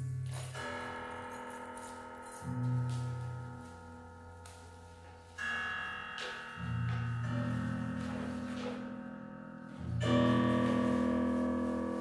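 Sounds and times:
grand piano chamber music: 0:00.0 - 0:12.0.

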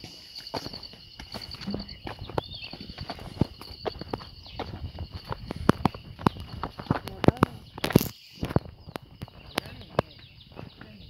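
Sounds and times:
footsteps on stony ground and grass: 0:00.0 - 0:11.0
high pulsing chirp: 0:00.0 - 0:11.0.

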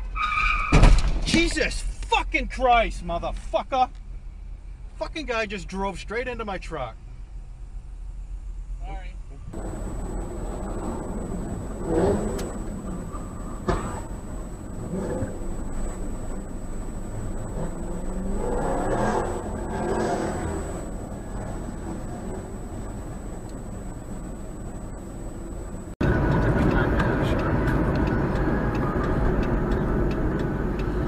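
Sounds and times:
engine and road rumble: 0:00.0 - 0:31.0.

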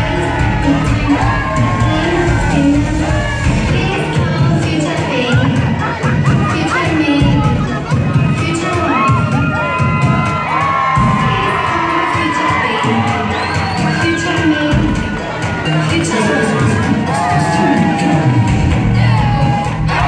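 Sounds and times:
crowd cheering and shrieking: 0:00.0 - 0:20.0
dance music with bass: 0:00.0 - 0:20.0.

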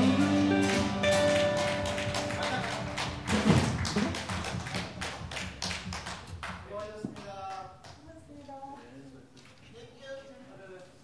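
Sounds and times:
band music: 0:00.0 - 0:05.4.

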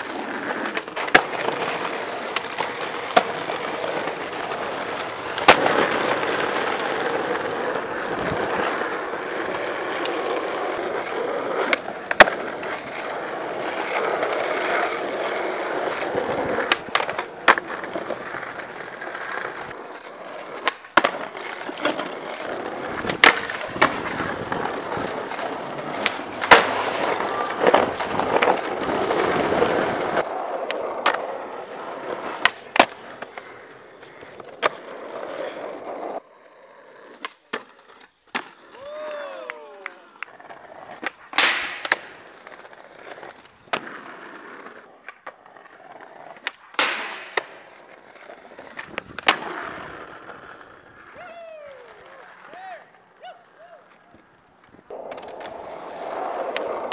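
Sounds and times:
skateboard wooden clacks: 0:00.0 - 0:36.2, 0:39.8 - 0:51.2, 0:51.8 - 0:56.9
skateboard wheels rolling on pavement: 0:00.0 - 0:56.9.

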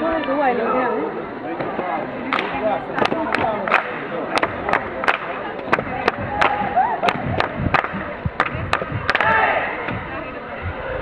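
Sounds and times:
crowd chatter: 0:00.0 - 0:11.0
hand clapping: 0:02.3 - 0:09.4
people shouting: 0:05.8 - 0:07.5, 0:09.1 - 0:09.9.

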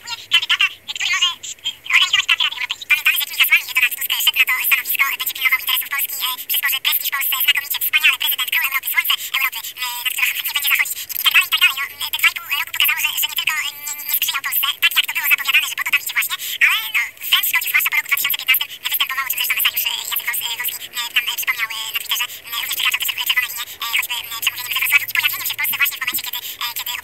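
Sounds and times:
tinny voice talking: 0:00.0 - 0:27.0.

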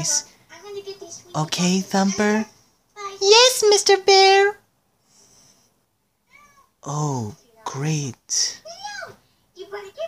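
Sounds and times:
voice: 0:00.0 - 0:04.6, 0:06.8 - 0:10.0.

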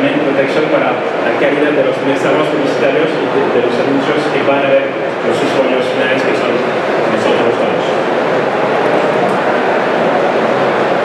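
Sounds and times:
loud steady background din: 0:00.0 - 0:11.0.

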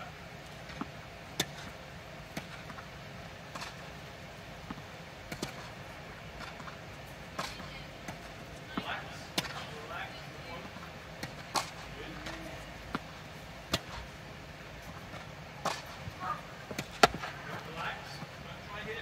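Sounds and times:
tennis ball pops: 0:15.6 - 0:16.0.

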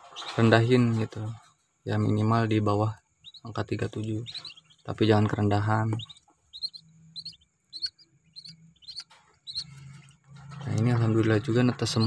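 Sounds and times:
ducklings peeping: 0:00.0 - 0:12.0.

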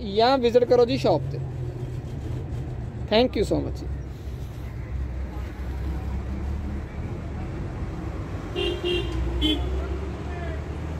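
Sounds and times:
low street traffic: 0:00.0 - 0:10.9
vehicle horn toots: 0:08.5 - 0:09.8.

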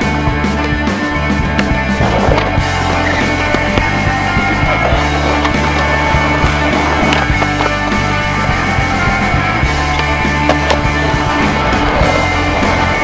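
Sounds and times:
music: 0:00.0 - 0:13.0
skateboard clacking: 0:00.0 - 0:13.0
skateboard wheels rolling on concrete: 0:00.0 - 0:13.0.

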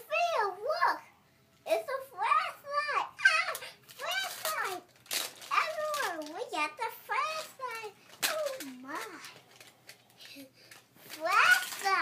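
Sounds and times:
girl talking: 0:00.0 - 0:09.4, 0:10.3 - 0:12.0.

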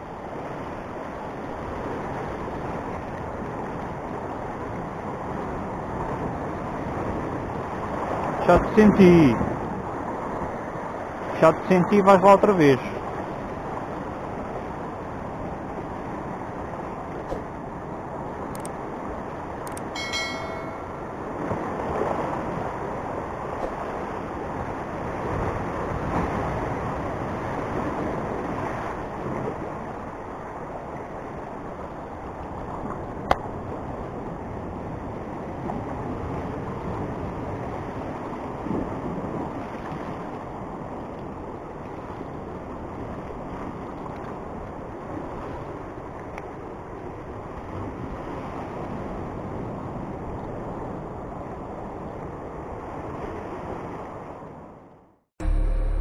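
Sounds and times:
wind on microphone: 0:13.1 - 0:45.8
sharp click: 0:19.7 - 0:19.9.

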